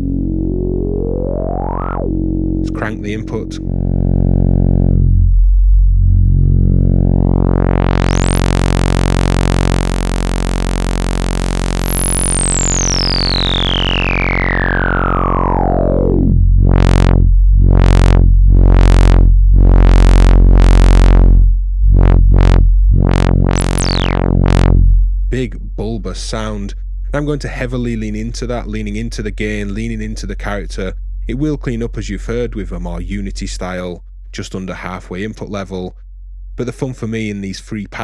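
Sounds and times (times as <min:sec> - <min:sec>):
overdriven sawtooth synth note: 0:00.0 - 0:05.4, 0:06.0 - 0:24.8
resonant filter sweep: 0:00.0 - 0:25.0.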